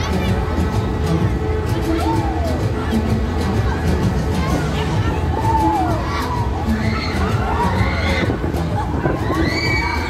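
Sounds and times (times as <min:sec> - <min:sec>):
riders screaming and shouting: 0:05.3 - 0:10.0.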